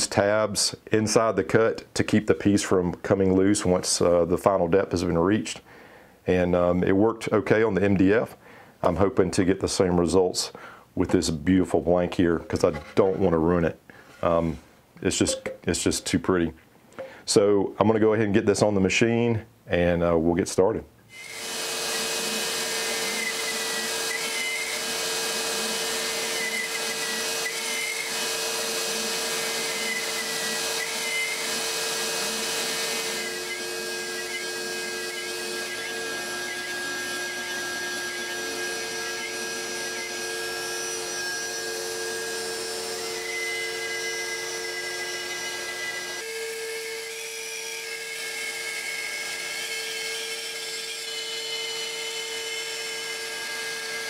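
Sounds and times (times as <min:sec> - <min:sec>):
stepper motors whining: 0:21.1 - 0:47.3
router spinning: 0:21.1 - 0:54.0.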